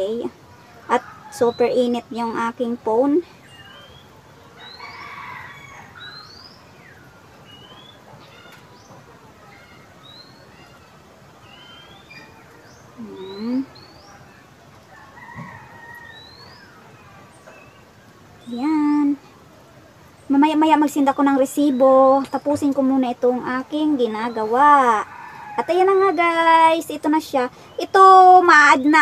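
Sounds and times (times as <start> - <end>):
rising bird chirps: 3.4 - 18.6
rooster crowing: 4.6 - 6.2, 14.9 - 16.8, 25.0 - 26.1.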